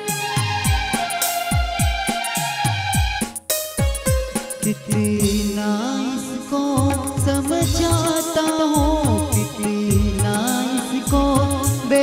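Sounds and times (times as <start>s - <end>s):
held melody line: 0.0s - 12.0s
deep drum hits: 6.8s - 8.2s.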